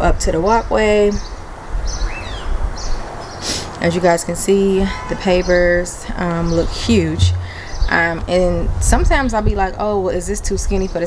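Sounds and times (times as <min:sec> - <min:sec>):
low outdoor rumble: 0:03.8 - 0:11.0
high bird chirps: 0:06.4 - 0:08.1.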